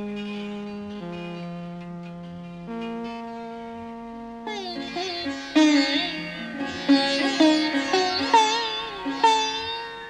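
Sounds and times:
plucked string instrument melody: 0.0 - 10.0.

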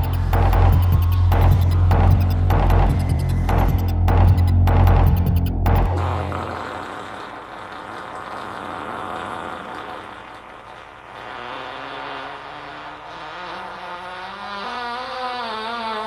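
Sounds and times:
rushing electronic noise: 0.0 - 8.0.

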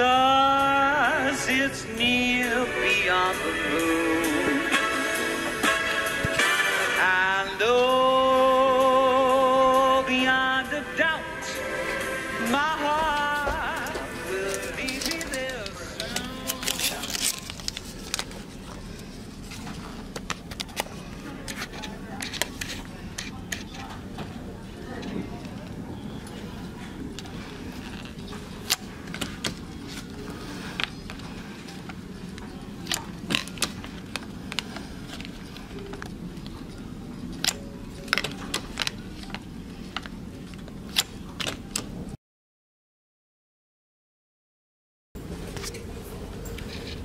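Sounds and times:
steady low hum: 0.0 - 42.2.

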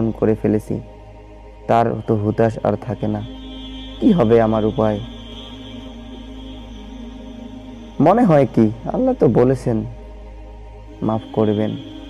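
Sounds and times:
soft chant-like drone music: 0.0 - 12.0.

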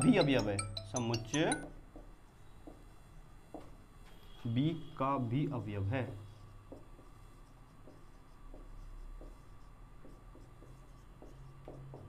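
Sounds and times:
marker pen writing on whiteboard: 0.0 - 4.7, 5.5 - 12.0
faint steady hum: 0.0 - 12.0.

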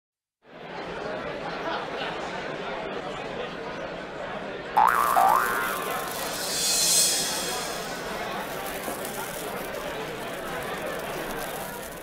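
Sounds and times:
cartoon spring boing: 4.8 - 6.4.

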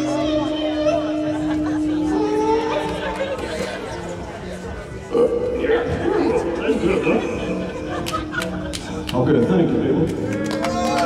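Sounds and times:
voice imitating synthesiser tone: 0.0 - 3.8.

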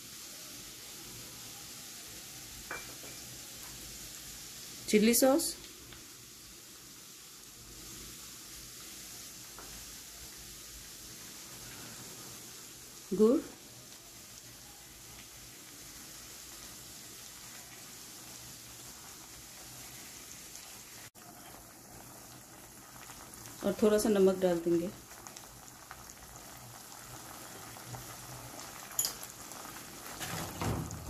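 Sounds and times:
garlic sizzling in a pan: 0.0 - 31.0.

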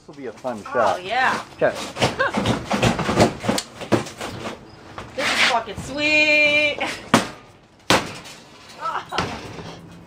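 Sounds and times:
sledgehammer blows cracking: 7.1 - 8.4.

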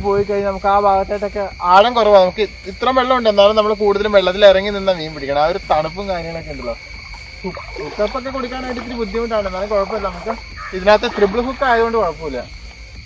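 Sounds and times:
man talking: 0.0 - 6.8, 7.4 - 12.5
steady high-pitched drone: 0.6 - 13.0.

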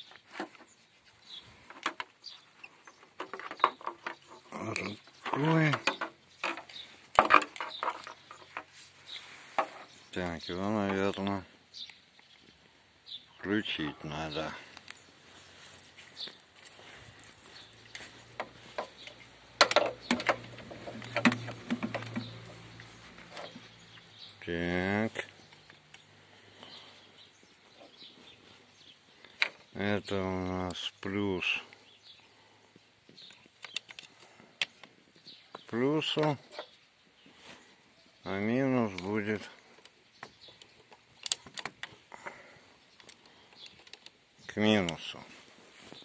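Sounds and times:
plastic clicks and knocks: 5.2 - 8.7, 18.4 - 22.5.

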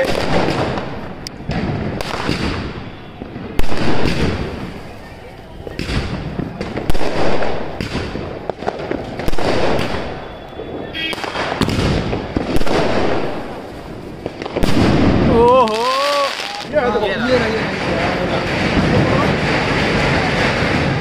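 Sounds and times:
firework launch bangs: 0.0 - 4.8, 5.7 - 10.4, 11.0 - 16.7.

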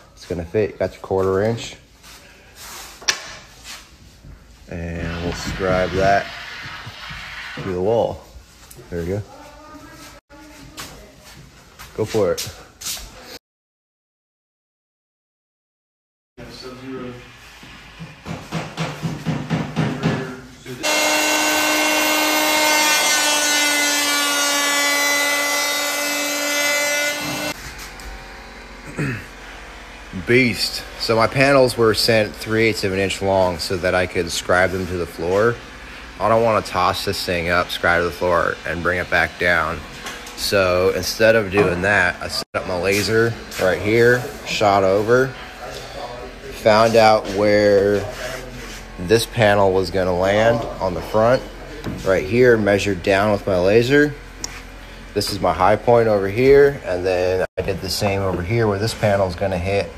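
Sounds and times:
quick scratching strokes: 4.7 - 8.6
electric hand planer whining: 20.8 - 30.7.

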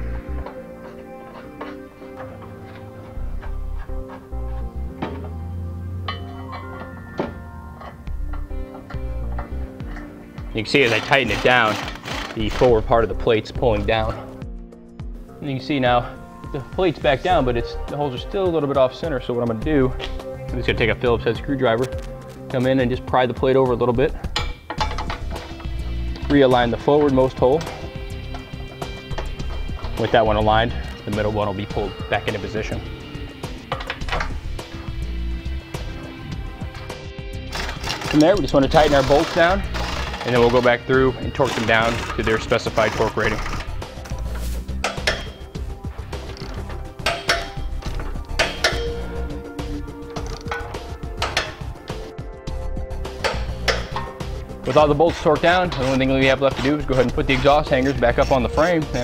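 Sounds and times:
background music: 0.0 - 59.0
screwdriver scraping metal plate: 7.8 - 12.9, 24.3 - 31.0, 37.5 - 49.3, 53.1 - 58.6
socket wrench ratcheting: 10.8 - 12.7.

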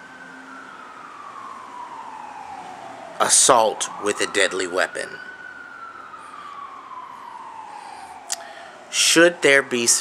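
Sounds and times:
siren wailing: 0.0 - 10.0.

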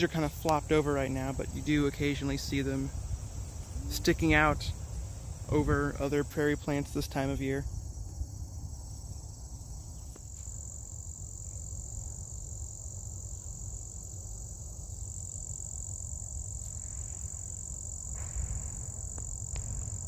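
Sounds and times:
chorus of singing insects: 0.0 - 20.0
wind rumble on microphone: 1.3 - 6.0, 16.8 - 20.0.

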